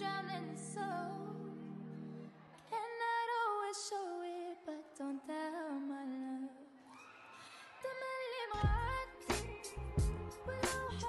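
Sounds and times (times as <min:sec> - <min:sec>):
person singing: 0:00.0 - 0:06.8, 0:07.8 - 0:11.0.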